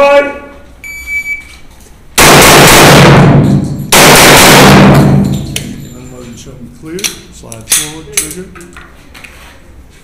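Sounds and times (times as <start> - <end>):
shot timer beep: 0.8 - 1.5
pistol gunfire distorted: 2.2 - 5.8.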